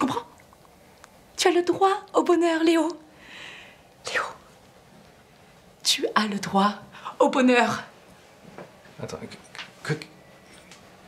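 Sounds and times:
soft breath: 0:03.1 - 0:04.0.

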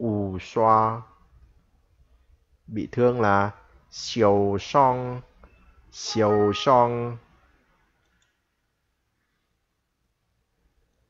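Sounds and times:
person speaking: 0:06.0 - 0:07.2.

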